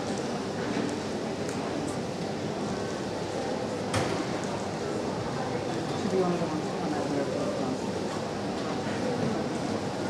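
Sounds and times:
murmur of indoor hall: 0:00.0 - 0:10.0.

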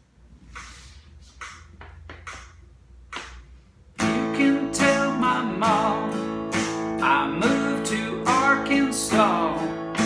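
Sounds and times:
strummed acoustic guitar: 0:04.0 - 0:10.0.

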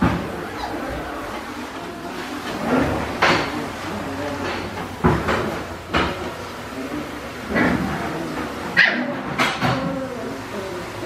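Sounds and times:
dog barking: 0:08.8 - 0:09.2.

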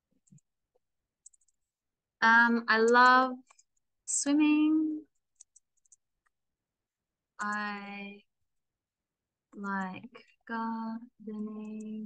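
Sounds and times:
mouse and keyboard clicks: 0:01.2 - 0:01.7, 0:05.2 - 0:06.4.

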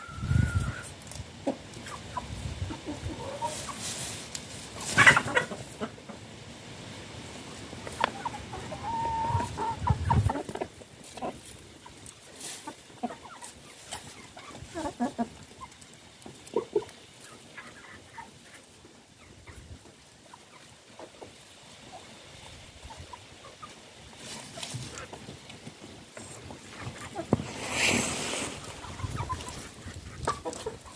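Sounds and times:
chicken drawn-out call: 0:00.0 - 0:04.2, 0:04.8 - 0:06.2, 0:07.8 - 0:11.4, 0:26.2 - 0:30.9
chickens clucking softly: 0:00.0 - 0:30.9.

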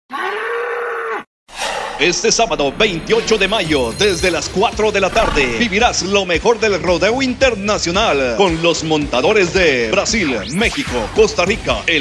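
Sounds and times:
bull bellowing: 0:00.1 - 0:01.2, 0:05.1 - 0:05.9
announcer speaking: 0:02.3 - 0:06.4.

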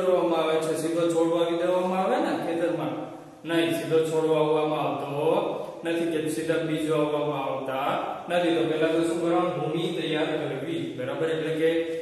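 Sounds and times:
man lecturing: 0:00.0 - 0:12.0.

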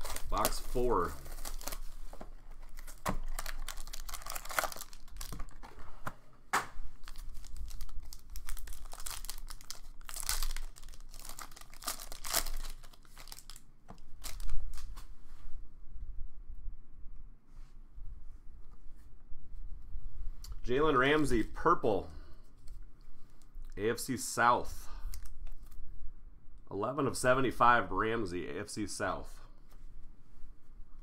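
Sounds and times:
plastic wrapping crinkling and tearing: 0:00.0 - 0:05.7, 0:07.0 - 0:15.0.

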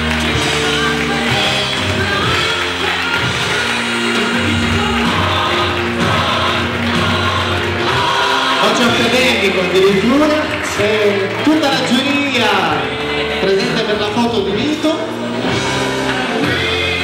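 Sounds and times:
music with singing voices: 0:00.0 - 0:17.0.

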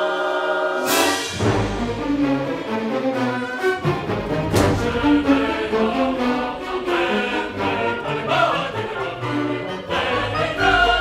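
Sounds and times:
choir singing: 0:00.0 - 0:11.0
symphony orchestra: 0:00.0 - 0:11.0.

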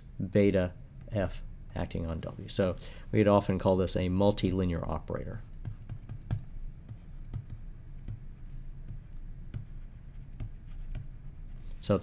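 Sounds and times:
stylus tapping on tablet: 0:05.5 - 0:11.1.

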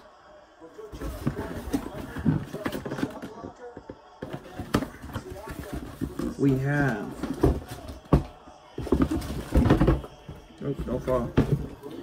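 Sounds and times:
cardboard box knocks and scrapes: 0:07.1 - 0:10.1.

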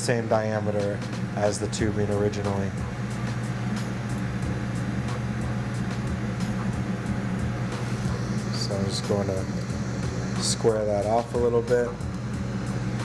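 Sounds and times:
low steady hum: 0:00.0 - 0:13.0
torch flame rushing: 0:07.3 - 0:13.0.

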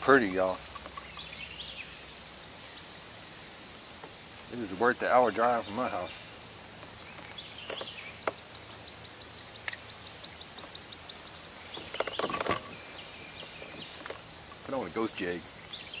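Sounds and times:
rustle: 0:00.0 - 0:16.0.

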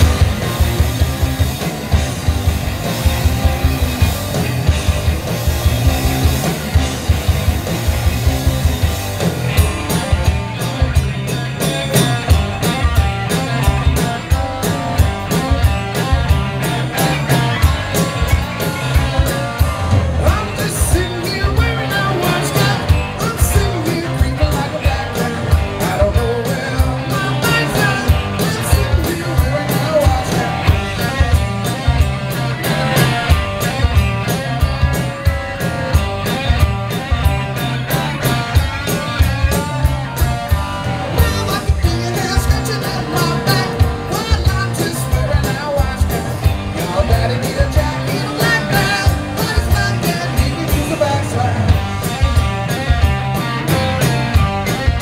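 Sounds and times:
distorted electric guitars: 0:00.0 - 0:55.0
drum kit beat: 0:00.0 - 0:55.0
person singing: 0:20.2 - 0:31.2, 0:41.1 - 0:51.8.

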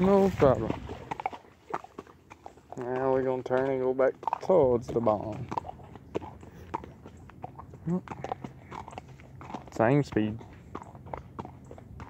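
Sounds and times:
hooves on wet gravel: 0:00.0 - 0:12.0.

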